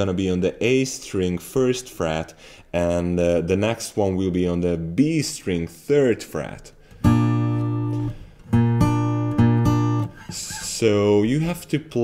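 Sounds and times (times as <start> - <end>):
acoustic guitar fingerpicked: 6.8 - 10.9.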